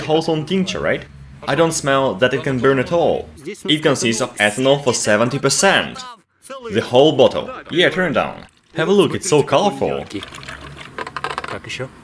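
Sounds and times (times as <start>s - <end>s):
liquid pouring and gurgling: 7.8s - 11.4s
small clicks and glugs: 10.2s - 11.7s.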